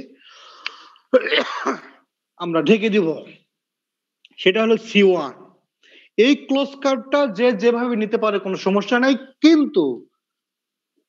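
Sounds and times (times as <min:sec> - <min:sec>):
man breathing in wheezily: 0:00.2 - 0:01.1
man clearing throat: 0:01.2 - 0:02.0.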